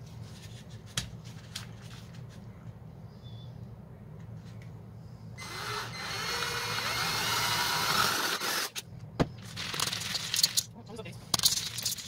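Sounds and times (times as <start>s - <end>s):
drill hum: 5.4s - 8.8s.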